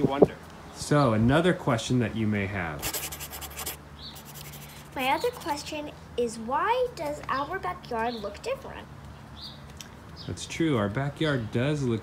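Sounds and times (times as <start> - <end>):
pencil scratching on paper: 2.8 - 5.7.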